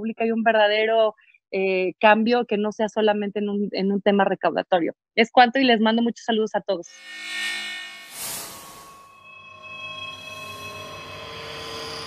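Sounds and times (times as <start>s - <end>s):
sustained synthesized chord: 7.0s - 12.0s.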